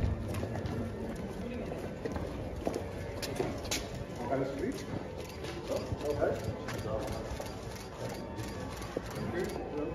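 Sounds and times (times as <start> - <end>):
faint murmur of voices: 0.0 - 9.9.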